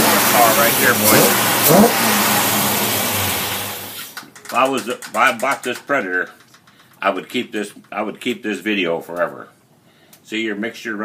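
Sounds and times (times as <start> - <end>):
small engine running at raised speed: 0.0 - 3.9.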